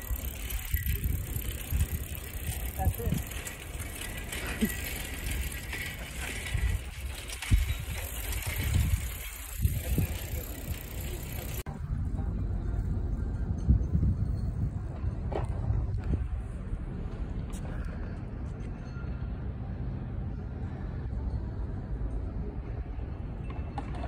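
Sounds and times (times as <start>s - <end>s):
wind rumbling over microphone: 0.0s - 4.3s, 5.2s - 17.4s
bicycle knocks and rattles: 0.0s - 11.6s.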